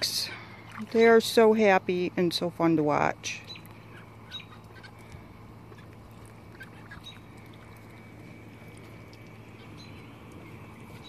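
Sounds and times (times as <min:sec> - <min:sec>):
low steady hum: 0:00.0 - 0:11.0
poultry calls: 0:03.4 - 0:11.0.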